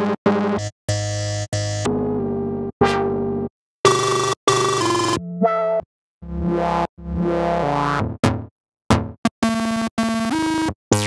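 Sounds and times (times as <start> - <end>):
synthesizer notes: 3.9 - 8.4.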